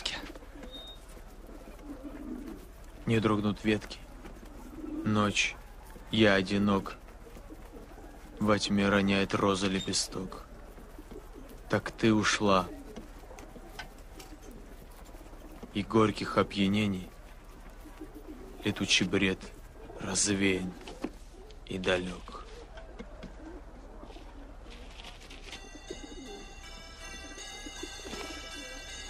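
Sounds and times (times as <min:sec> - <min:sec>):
bird cooing: 0:00.0 - 0:29.0.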